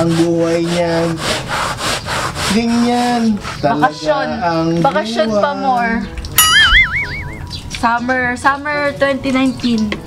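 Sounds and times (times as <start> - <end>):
warbling whistle-like tone: 6.4 - 7.6.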